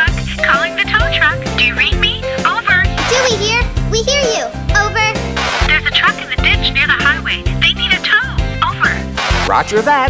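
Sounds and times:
cartoon music with bass beat: 0.0 - 10.0.

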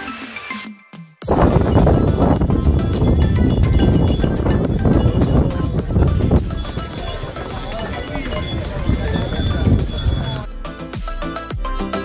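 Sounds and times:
donkey hooves on stone: 1.2 - 10.5.

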